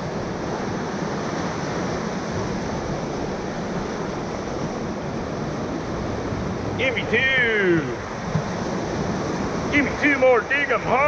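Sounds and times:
whitewater rapids rushing: 0:00.0 - 0:11.0.

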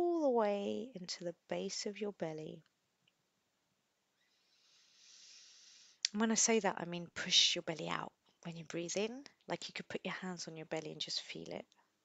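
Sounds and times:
woman breathing in: 0:04.2 - 0:06.0.

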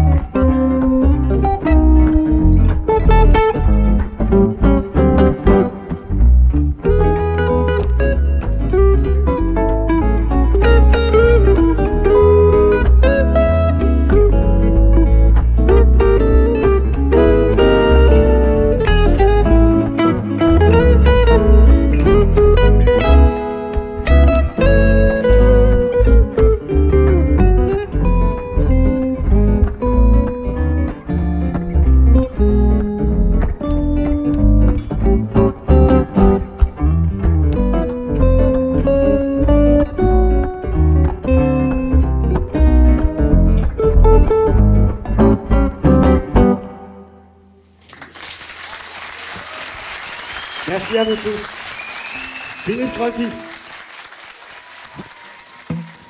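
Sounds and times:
jazz guitars playing: 0:00.0 - 0:47.8.

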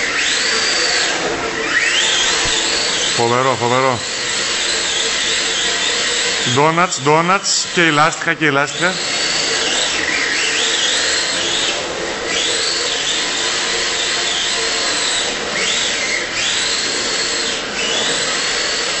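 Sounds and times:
electric motor whining: 0:00.0 - 0:19.0.

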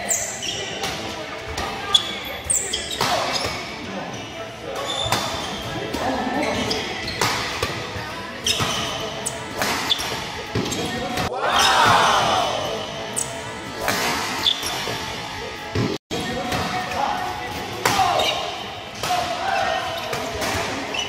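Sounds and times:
shoes squeaking on court floor: 0:00.0 - 0:11.8, 0:12.5 - 0:16.0, 0:19.6 - 0:21.0
players' voices: 0:00.0 - 0:21.0.

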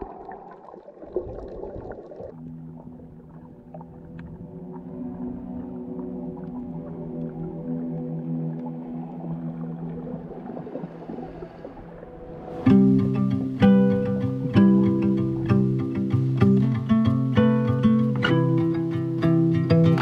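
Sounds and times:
churning bubbling water: 0:00.0 - 0:13.5
boat motor hum underwater: 0:00.0 - 0:20.0.

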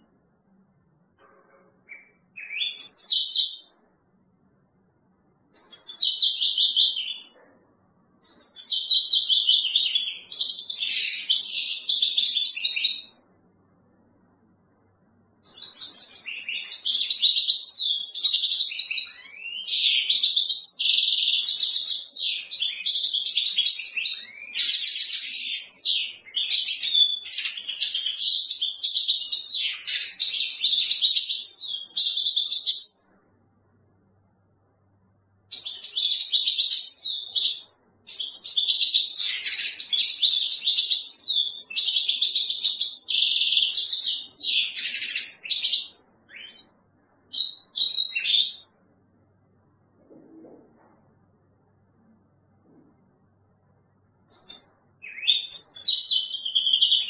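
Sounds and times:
bird twittering and trilling: 0:01.2 - 0:04.0, 0:05.5 - 0:07.6, 0:08.2 - 0:13.2, 0:15.4 - 0:33.2, 0:35.5 - 0:48.7, 0:54.3 - 0:57.0.

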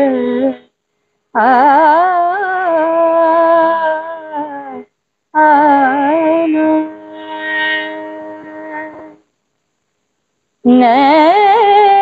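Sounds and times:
woman singing classical music: 0:00.0 - 0:00.7, 0:01.4 - 0:09.2, 0:10.6 - 0:12.0.

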